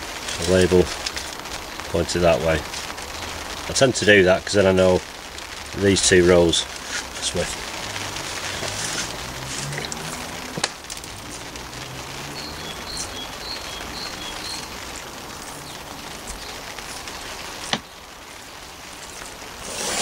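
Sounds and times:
water pattering on compost: 0.0s - 20.0s.

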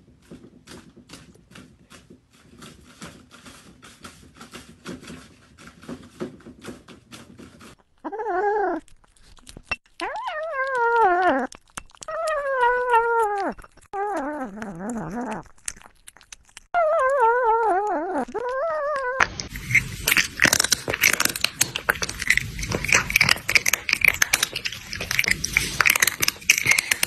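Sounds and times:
animal crying wavering howl: 12.1s - 15.4s, 16.8s - 19.2s
loud crackly clattering noise: 19.2s - 27.0s.

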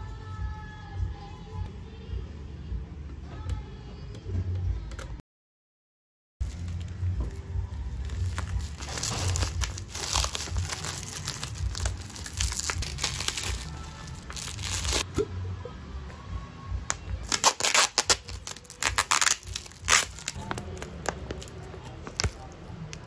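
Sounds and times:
background music: 0.0s - 5.2s, 6.4s - 23.0s
plastic wrap crinkling and tearing: 8.0s - 15.0s, 17.2s - 23.0s.

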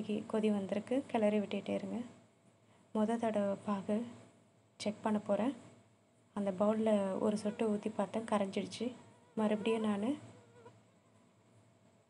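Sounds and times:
person speaking: 6.4s - 10.3s.

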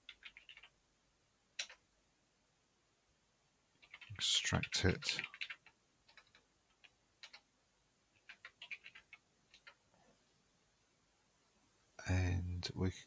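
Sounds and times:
keyboard typing: 0.0s - 0.8s, 1.6s - 1.8s, 3.8s - 7.5s, 8.2s - 9.8s.

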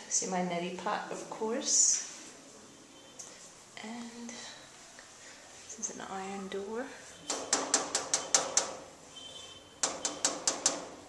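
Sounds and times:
knocking on iron door: 7.3s - 8.8s, 9.8s - 11.0s.

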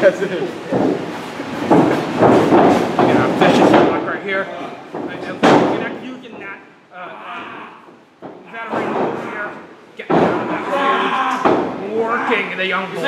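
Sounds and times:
people shouting: 10.2s - 12.6s.

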